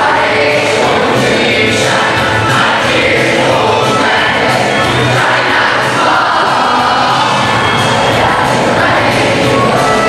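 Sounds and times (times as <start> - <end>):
children's choir singing: 0.0 - 10.0
instrumental backing music: 0.0 - 10.0.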